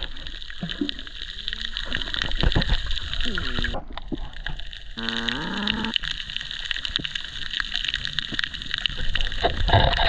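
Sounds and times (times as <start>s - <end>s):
underwater clicks and crackles: 0.0s - 10.0s.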